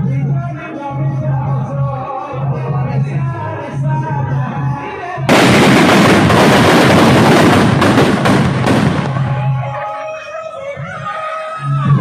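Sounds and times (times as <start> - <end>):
firecrackers crackling: 5.3 - 9.7.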